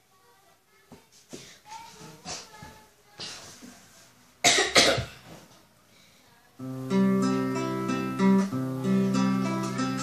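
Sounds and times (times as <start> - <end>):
person coughing: 4.4 - 5.2.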